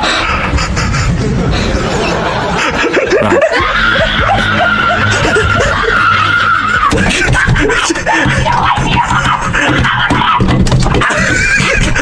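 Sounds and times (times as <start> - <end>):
giggling laughter: 0.0 - 12.0.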